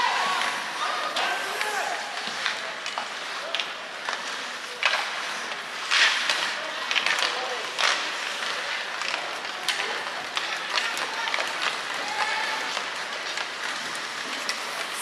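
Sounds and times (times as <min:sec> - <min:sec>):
skates scraping ice: 0:00.0 - 0:15.0
stick and puck clacks: 0:00.0 - 0:15.0.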